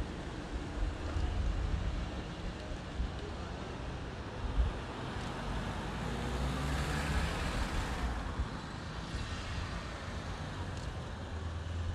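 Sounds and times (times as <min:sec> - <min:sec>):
cars driving past: 0:04.9 - 0:11.9.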